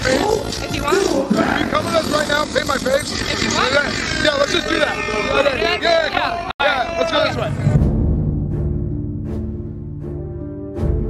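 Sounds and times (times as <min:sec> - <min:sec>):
people shouting and talking: 0:00.0 - 0:07.7
background music: 0:07.1 - 0:11.0.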